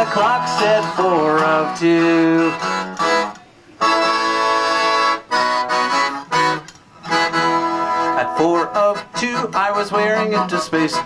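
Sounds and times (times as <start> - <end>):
accordion playing chords: 0.0 - 11.0.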